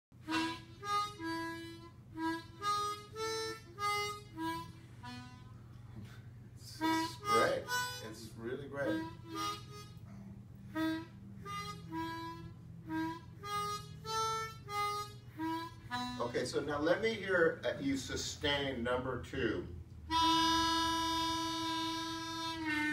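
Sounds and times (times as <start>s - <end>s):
blues harmonica notes: 0.2s - 18.1s, 20.0s - 22.9s.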